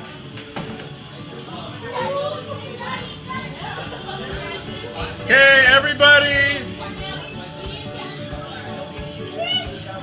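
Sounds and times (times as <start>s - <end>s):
background music: 0.0s - 10.0s
people talking: 0.9s - 10.0s.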